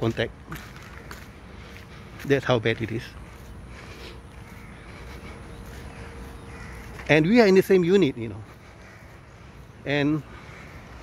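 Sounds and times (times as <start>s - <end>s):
bird calling faintly: 0.1s - 11.0s.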